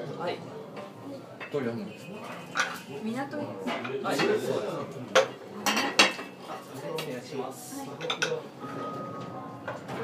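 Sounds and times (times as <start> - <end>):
utensils clinking on plates: 0.7 - 3.0, 3.6 - 4.5, 5.1 - 6.8, 7.9 - 10.0.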